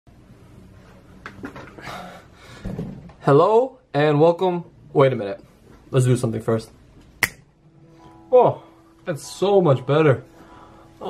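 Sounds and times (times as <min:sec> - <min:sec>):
faint room hum: 0:00.1 - 0:11.0.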